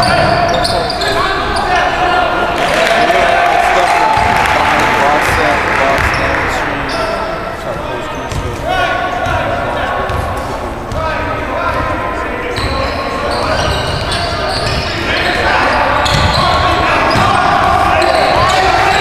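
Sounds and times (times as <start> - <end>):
voices calling out: 0.0 - 10.2.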